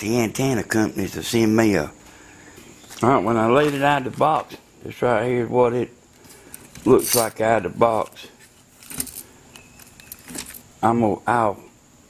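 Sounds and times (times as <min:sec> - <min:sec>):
man speaking: 0:00.0 - 0:02.0, 0:03.0 - 0:06.0, 0:06.8 - 0:08.4, 0:10.8 - 0:11.7
metallic rattling of handled hardware: 0:06.5 - 0:07.4, 0:08.0 - 0:10.7.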